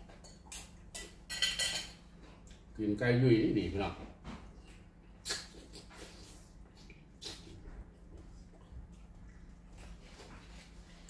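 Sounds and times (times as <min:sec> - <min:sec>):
man chewing food: 0:04.4 - 0:11.0.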